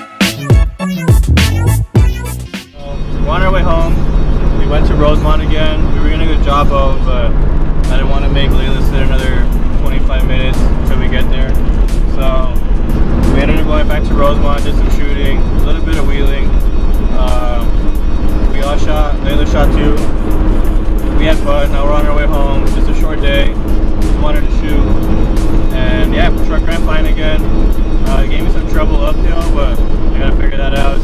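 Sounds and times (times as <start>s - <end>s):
background music with steady beat: 0.0s - 31.0s
truck engine drone: 0.4s - 31.0s
voices: 2.8s - 16.5s, 18.5s - 20.1s, 25.7s - 31.0s
road noise inside cab: 2.8s - 31.0s.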